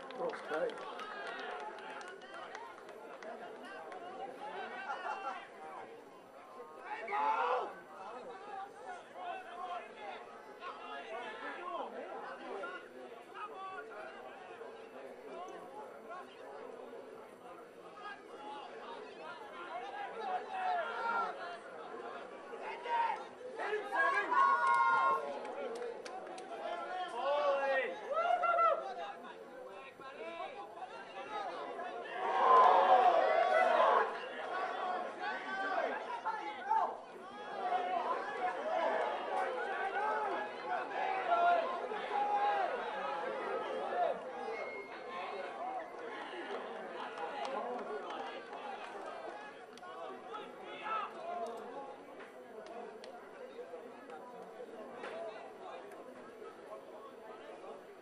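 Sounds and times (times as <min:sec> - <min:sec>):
people talking and calling out: 0:00.0 - 0:58.0.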